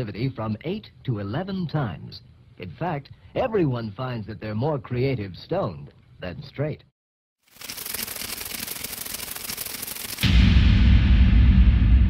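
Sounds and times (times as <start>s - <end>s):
rapid clicks and crackle: 7.4s - 10.3s.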